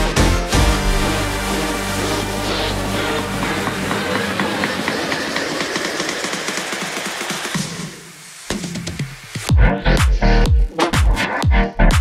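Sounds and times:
electronic music: 0.0s - 12.0s.

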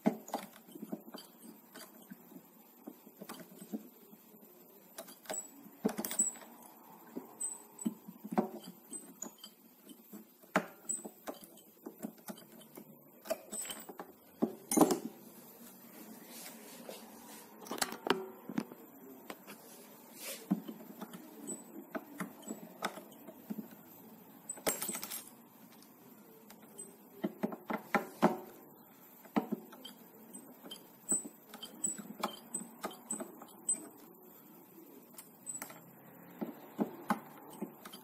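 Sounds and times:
metal tool clicking and scraping: 29.7s - 34.1s.

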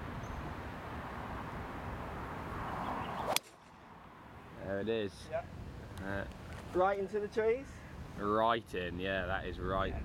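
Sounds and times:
wind-like outdoor noise: 0.0s - 10.0s
golf club swishing: 3.2s - 3.7s
golf club striking ball: 3.3s - 3.8s.

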